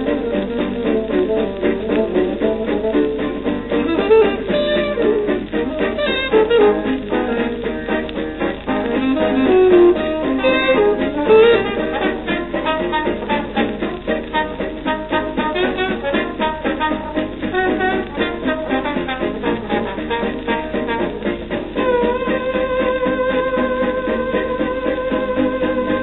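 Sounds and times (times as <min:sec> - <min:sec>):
jazz dance band playing: 0:00.0 - 0:26.0.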